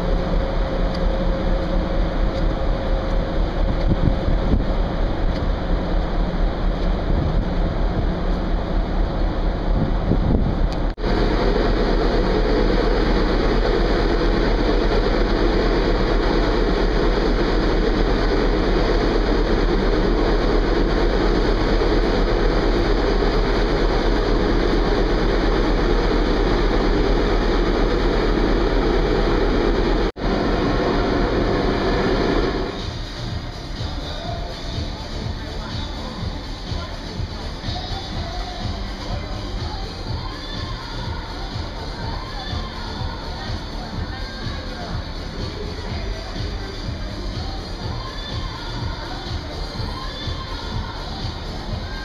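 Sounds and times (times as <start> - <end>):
ship machinery roar: 0.0 - 52.0
wind: 0.0 - 52.0.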